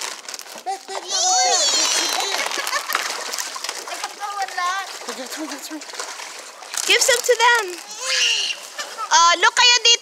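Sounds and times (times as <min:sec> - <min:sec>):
fish splashing in water: 0:00.0 - 0:09.3.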